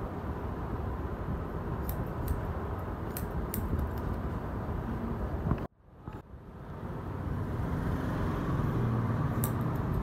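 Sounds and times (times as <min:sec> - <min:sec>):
scissors snipping hair: 0:01.8 - 0:02.4, 0:03.1 - 0:04.2, 0:09.3 - 0:10.0.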